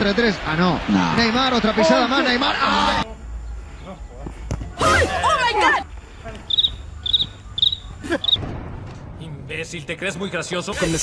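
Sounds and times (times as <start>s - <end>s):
open-air background rumble: 1.8s - 11.0s.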